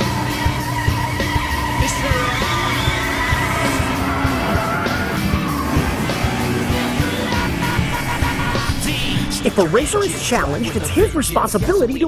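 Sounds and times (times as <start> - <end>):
car tyres squealing: 0.0 - 10.9
up-tempo music with drum beat: 0.0 - 12.0.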